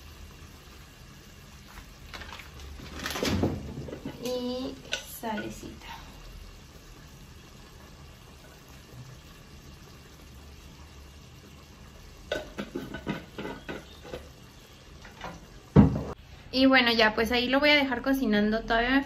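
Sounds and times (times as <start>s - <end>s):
rice sizzling in a pot: 0.0s - 19.0s.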